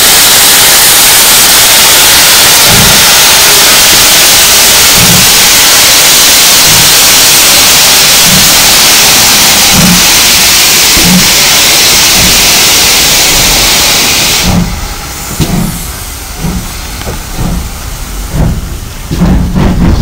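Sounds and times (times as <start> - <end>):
loud steam hiss: 0.0 - 20.0
steam locomotive exhaust beats: 0.0 - 20.0.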